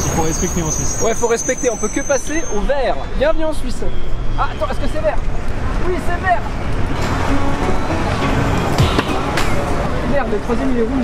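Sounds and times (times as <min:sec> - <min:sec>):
background music: 0:07.0 - 0:10.1.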